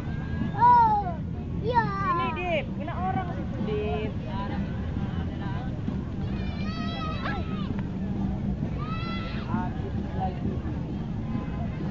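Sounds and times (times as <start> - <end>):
faint voices talking: 0.0 - 11.9
road traffic rumble: 0.0 - 11.9.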